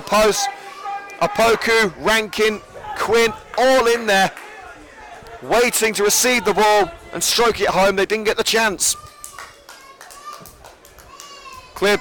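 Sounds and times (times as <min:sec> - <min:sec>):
distant crowd shouts: 0:00.0 - 0:07.4
sports commentary: 0:00.0 - 0:09.0, 0:11.8 - 0:12.0.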